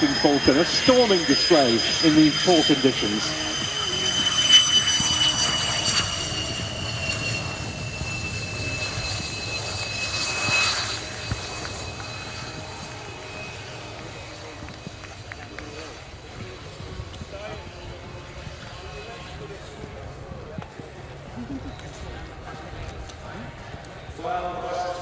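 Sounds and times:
jet engine high whine: 0.0s - 25.0s.

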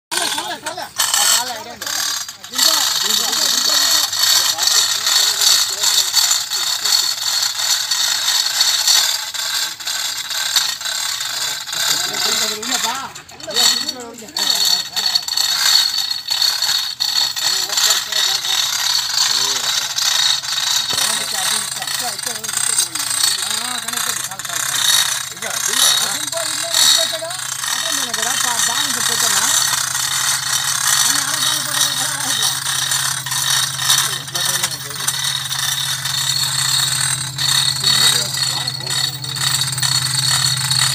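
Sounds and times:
men talking: 0.1s - 8.9s, 9.5s - 40.9s
chain hoist rattling and clicking: 0.1s - 40.9s.

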